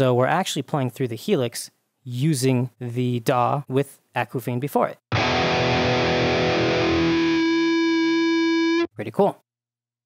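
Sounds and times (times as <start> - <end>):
distorted electric guitar chord: 5.1 - 8.9
guitar feedback note: 5.1 - 8.9.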